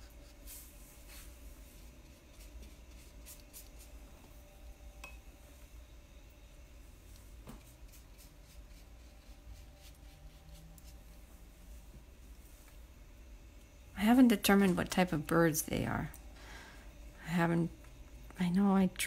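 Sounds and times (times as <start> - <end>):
brush strokes on paper: 0.0 - 4.1, 7.5 - 12.6
low steady hum: 0.0 - 19.0.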